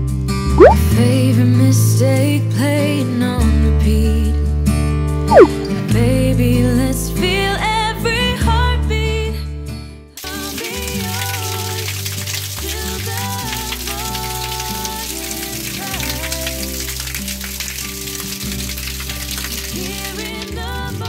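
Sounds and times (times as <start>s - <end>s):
water pouring from tap: 10.2s - 21.0s.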